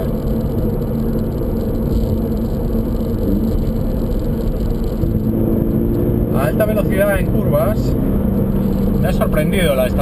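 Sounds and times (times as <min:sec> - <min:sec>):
car engine running: 0:00.0 - 0:10.0
road and wind noise: 0:00.0 - 0:10.0.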